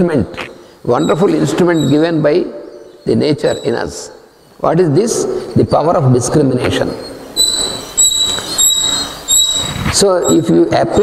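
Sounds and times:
feedback squeal: 0.0 - 4.2, 4.8 - 11.0.

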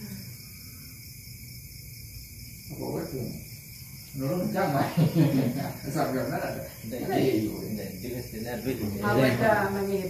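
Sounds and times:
man talking: 5.9 - 9.4.

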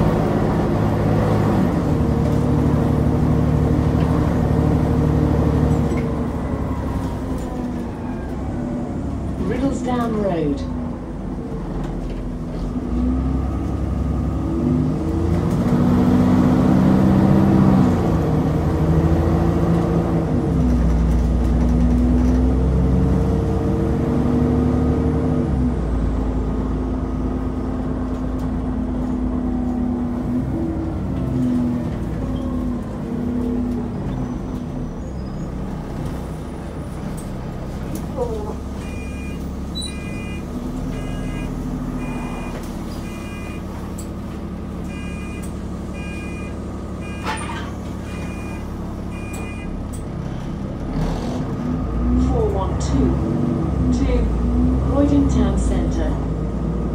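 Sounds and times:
bus diesel engine revving: 0.0 - 56.9
high electronic beeping: 38.8 - 43.7, 44.9 - 47.4, 48.0 - 49.7.

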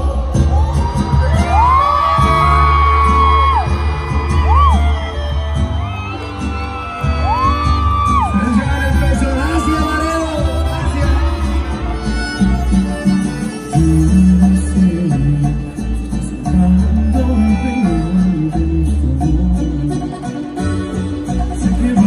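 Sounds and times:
live band playing instrumental: 0.0 - 22.0.

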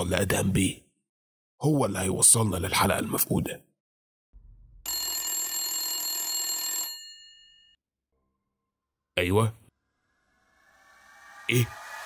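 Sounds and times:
telephone bell ringing: 4.9 - 7.8.

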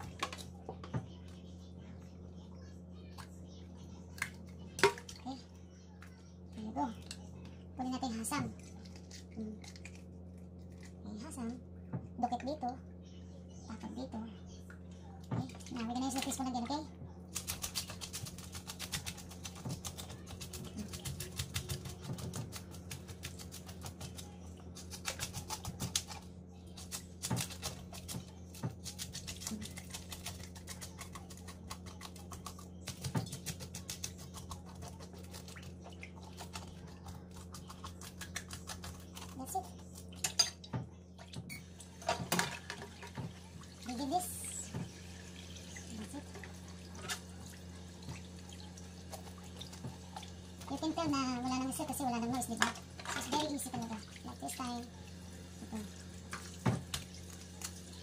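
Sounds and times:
fish scratching and clicking in sink: 17.3 - 26.2, 26.8 - 40.3.

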